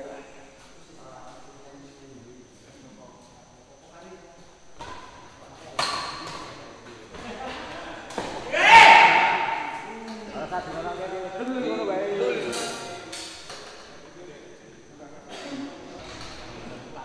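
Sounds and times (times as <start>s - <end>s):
loud shout: 8.3s - 10.0s.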